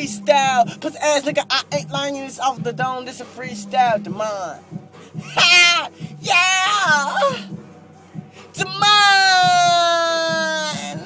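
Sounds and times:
man's long vocal cry: 5.2 - 7.5.

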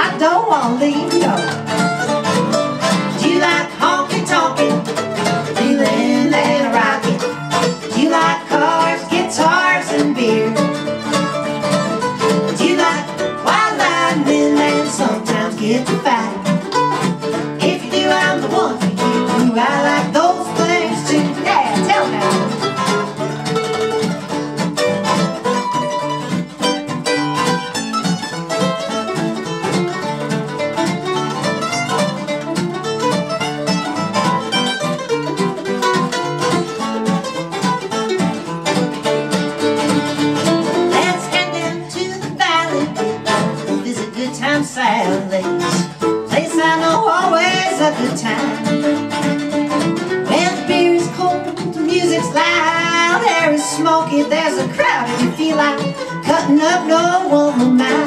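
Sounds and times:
woman singing: 0.0 - 1.6, 3.0 - 11.0, 12.3 - 16.7, 17.4 - 22.6, 40.9 - 48.9, 50.2 - 58.0
acoustic guitar: 0.0 - 58.0
mandolin: 0.0 - 58.0.

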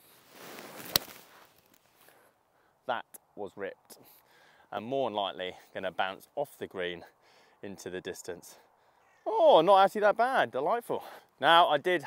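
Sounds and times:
golf club swishing: 0.0 - 1.9
golf club striking ball: 0.8 - 1.2.

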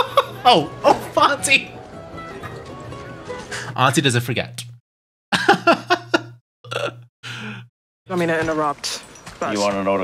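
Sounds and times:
man laughing: 5.3 - 6.4.

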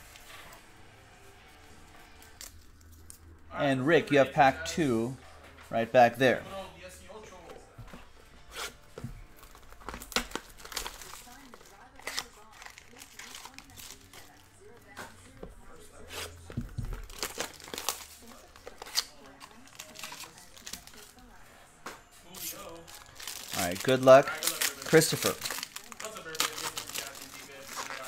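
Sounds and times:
plastic and foil packs crinkling: 9.2 - 21.4, 22.3 - 28.0.

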